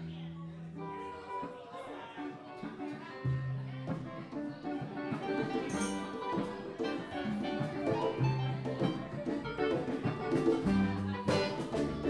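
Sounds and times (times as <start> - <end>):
electric guitars: 0.0 - 12.0
keyboard: 0.0 - 12.0.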